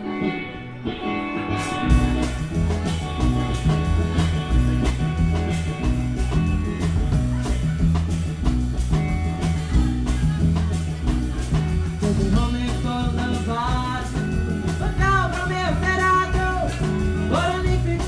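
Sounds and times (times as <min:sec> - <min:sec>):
drum kit and bass: 0:00.0 - 0:18.0
electric guitar: 0:00.0 - 0:18.0.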